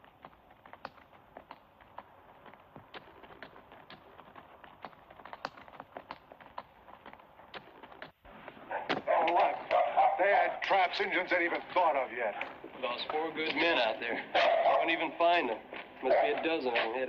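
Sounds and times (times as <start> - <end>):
horses' hooves clopping: 0.0 - 17.0
voices: 8.7 - 17.0.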